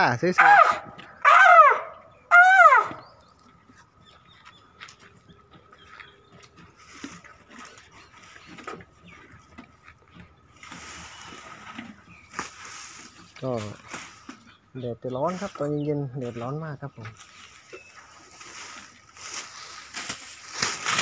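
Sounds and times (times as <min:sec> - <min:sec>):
rustling: 0:17.1 - 0:21.0.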